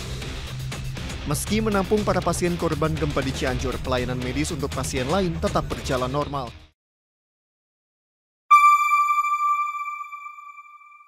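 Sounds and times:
single chime ringing: 8.5 - 11.0.

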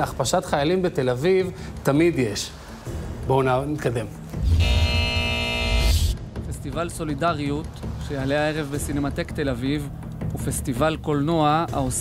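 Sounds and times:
held chord over deep bass: 4.5 - 6.1.

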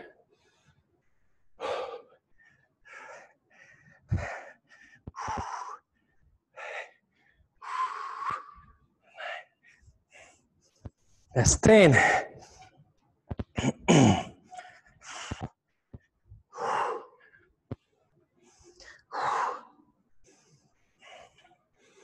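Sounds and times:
man gasping breaths: 1.6 - 10.4.

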